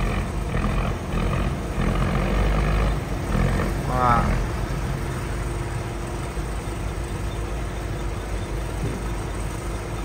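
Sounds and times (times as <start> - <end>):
boat diesel engine running hard: 0.0 - 10.0.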